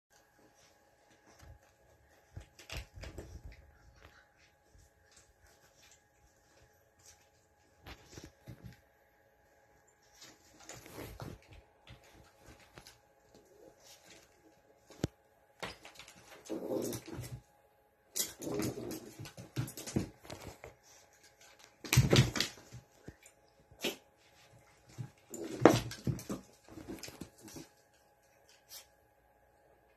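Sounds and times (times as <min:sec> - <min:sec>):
small dog playing: 0:00.2 - 0:08.9, 0:09.9 - 0:17.5, 0:18.1 - 0:29.0.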